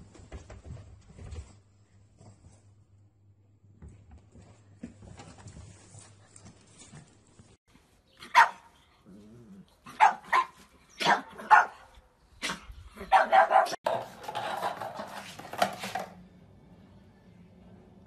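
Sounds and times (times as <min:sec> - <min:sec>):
dog barking: 0:08.3 - 0:08.7, 0:09.9 - 0:13.8.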